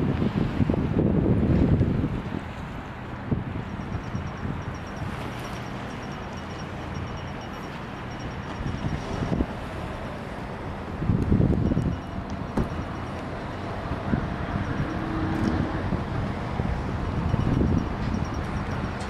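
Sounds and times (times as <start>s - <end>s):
wind buffeting microphone: 0.0s - 7.5s, 8.2s - 19.0s
rapid high-pitched ticking: 3.7s - 9.0s, 17.3s - 19.0s.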